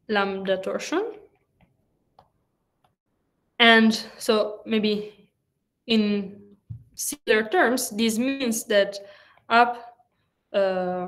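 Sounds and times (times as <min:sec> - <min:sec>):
woman speaking: 0:00.0 - 0:01.3, 0:03.6 - 0:05.2, 0:05.9 - 0:06.4, 0:07.0 - 0:10.0, 0:10.6 - 0:11.0.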